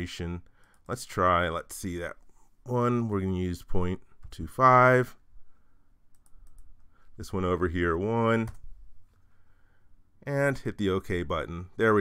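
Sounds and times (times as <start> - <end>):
computer keys typing: 6.1 - 6.8.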